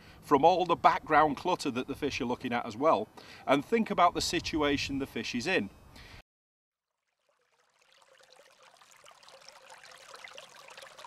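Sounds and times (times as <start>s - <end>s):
faint crackly trickle noise: 6.8s - 11.0s
faint steady tone: 6.9s - 11.0s.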